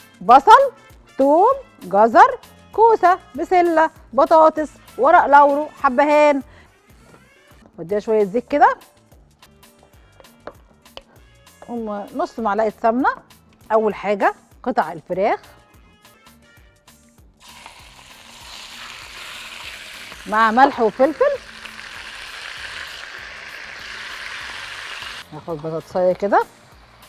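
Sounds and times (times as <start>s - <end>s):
chicken sizzling in a frying pan: 17.4s - 27.0s.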